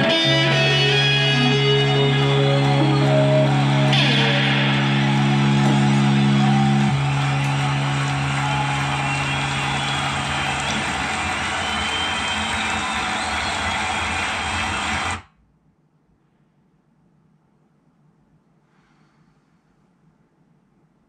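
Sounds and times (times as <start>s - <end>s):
distorted electric guitar: 0.0s - 11.6s.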